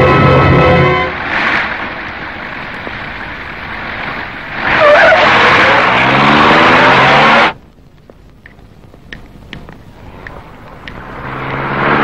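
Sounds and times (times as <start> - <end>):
car engines revving: 0.0 - 12.0
tyres screeching: 4.6 - 7.6.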